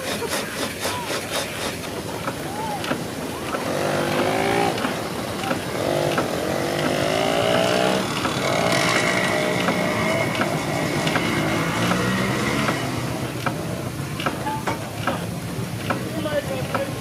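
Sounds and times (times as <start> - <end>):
light clicking of engine works: 0.0 - 17.0
steam engine running: 0.0 - 17.0
motor hum rising in pitch: 3.6 - 13.0.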